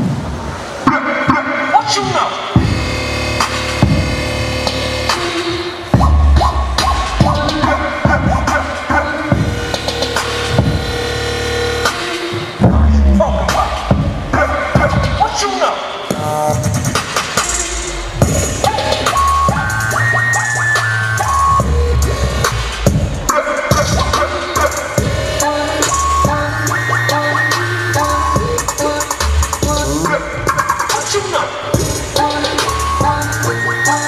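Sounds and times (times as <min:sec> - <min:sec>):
electronic hip-hop dance music: 0:00.0 - 0:34.0.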